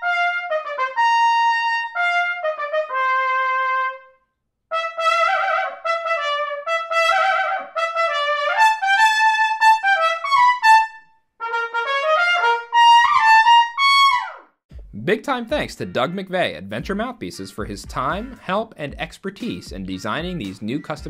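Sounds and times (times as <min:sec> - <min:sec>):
trumpet playing notes: 0:00.0 - 0:14.4.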